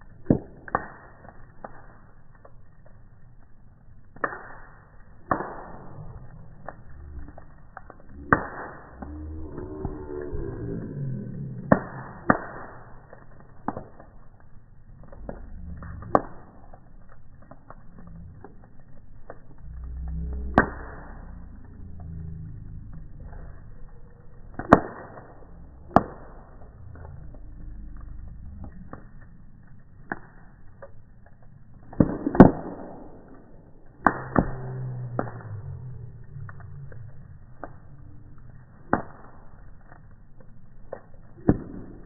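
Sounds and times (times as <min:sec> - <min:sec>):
deep rumble of burning wood: 0:00.0 - 0:42.0
sharp fire crack: 0:00.0 - 0:42.0.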